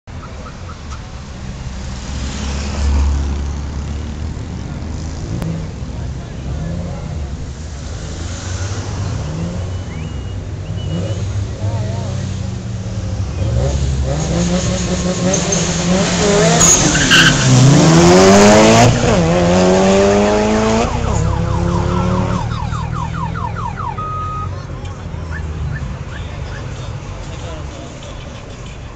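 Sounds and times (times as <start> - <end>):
car engines idling: 3.3 - 28.9
steady beep: 20.6 - 24.5.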